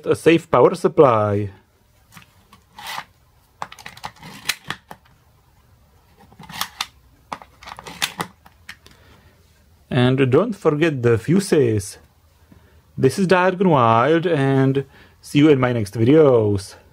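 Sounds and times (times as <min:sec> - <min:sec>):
plastic rubbing: 0:02.1 - 0:05.1, 0:06.1 - 0:08.8
short scrape: 0:02.7 - 0:03.1.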